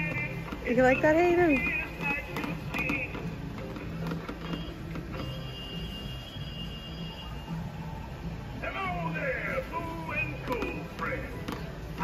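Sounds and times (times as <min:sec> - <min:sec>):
quiet toy music: 0:00.0 - 0:07.5.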